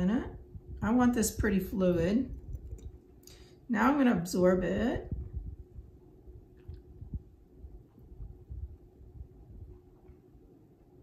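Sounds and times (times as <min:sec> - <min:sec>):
electric fan humming: 0:00.0 - 0:11.0
uneven low rumble: 0:00.0 - 0:11.0.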